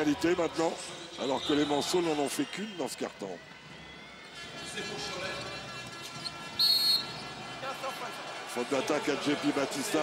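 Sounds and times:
referee's whistle blast: 6.6 - 7.3.

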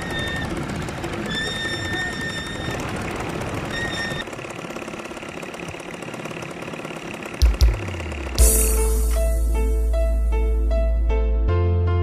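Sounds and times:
atv engines running: 0.0 - 9.1
background music: 7.6 - 12.0
music with bass and piano: 7.7 - 12.0.

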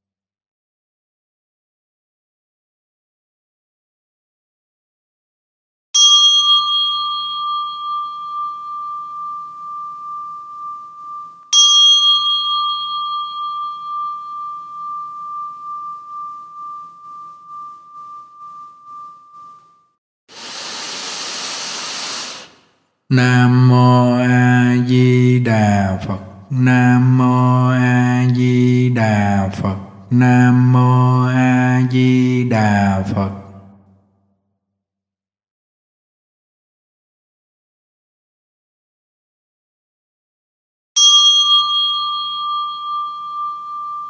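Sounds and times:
small bell ringing: 6.0 - 20.0, 41.0 - 44.0
short hiss: 20.3 - 22.8
person chanting: 20.4 - 33.7.

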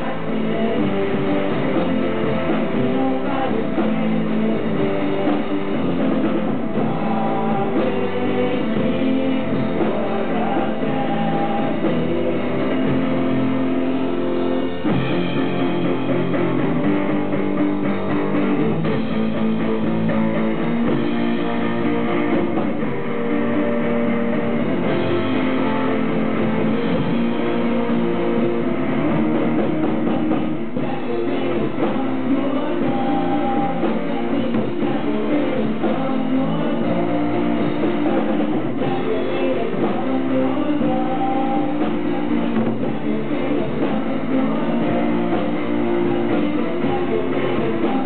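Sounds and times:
bass guitar: 0.0 - 48.0
drums: 0.0 - 48.0
electric guitars strumming: 0.0 - 48.0
live rock band playing: 0.0 - 48.0.

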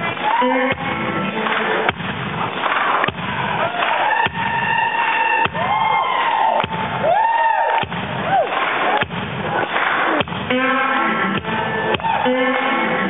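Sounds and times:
guitar playing sliding notes: 0.0 - 2.6, 9.6 - 13.0.

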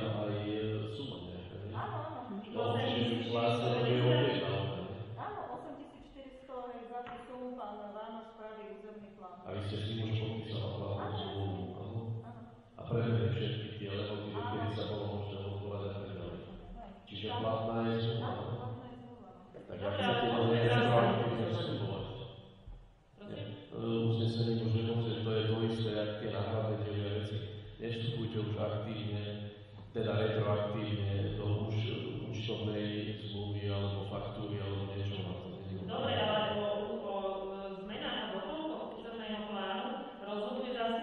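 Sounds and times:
person speaking in droning tone: 0.0 - 4.8, 9.5 - 12.0, 12.8 - 16.3, 17.1 - 18.7, 19.6 - 22.0
person talking: 0.0 - 22.1, 23.2 - 29.3, 29.9 - 41.0
low electrical hum: 0.0 - 41.0.

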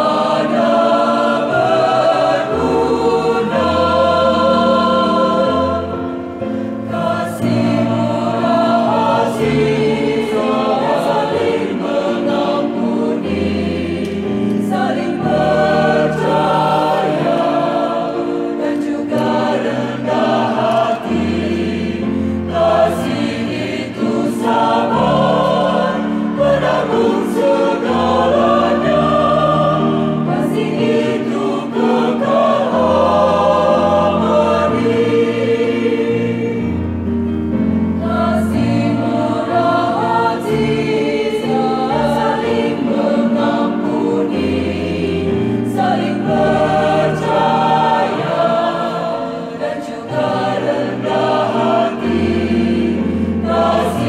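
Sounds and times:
electronic keyboard accompaniment: 0.0 - 54.0
mixed choir singing: 0.0 - 54.0.

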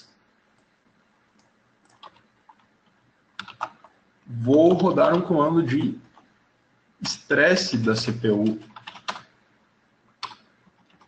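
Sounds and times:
computer keyboard keystrokes: 1.8 - 2.7, 3.4 - 3.9, 8.4 - 9.3, 10.2 - 11.0.

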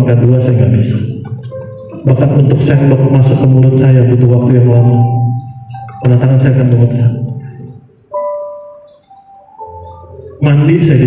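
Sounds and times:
soft bell-like musical notes: 1.4 - 11.0.

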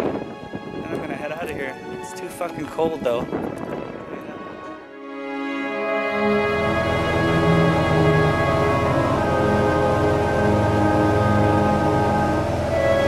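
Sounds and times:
sustained layered chords: 0.4 - 13.0.

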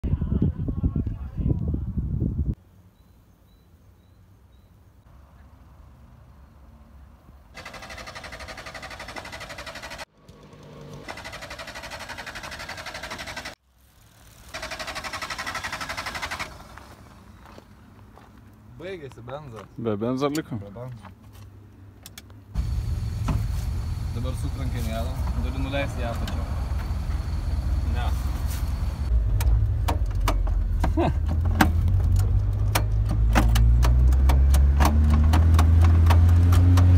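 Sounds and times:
outdoor background: 0.0 - 36.9
small scooter engine running: 7.6 - 17.2
van engine rumble from inside: 22.6 - 34.1.

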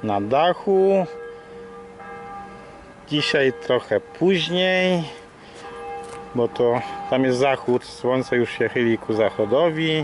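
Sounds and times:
church bells ringing: 0.0 - 10.0.

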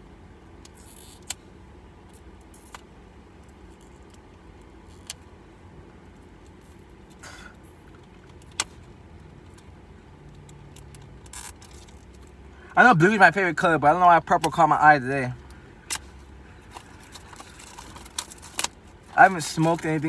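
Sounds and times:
low steady rumble: 0.0 - 20.0.

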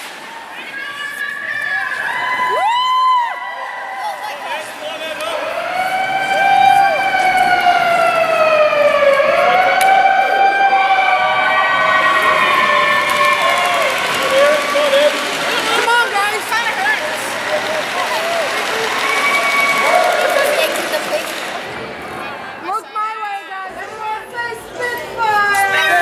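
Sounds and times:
crowd hubbub: 0.0 - 26.0
players cheering whoo: 1.6 - 4.6, 5.2 - 21.2.

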